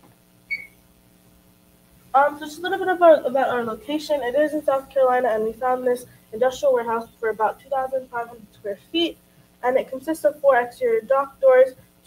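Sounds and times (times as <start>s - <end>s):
faint steady hum: 0.0s - 12.0s
short high-pitched tone: 0.5s - 0.8s.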